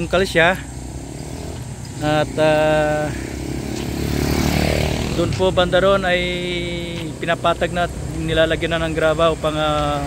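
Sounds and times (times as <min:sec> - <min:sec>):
passing engine noise: 0:00.0 - 0:10.0
vehicle engine running: 0:00.0 - 0:10.0.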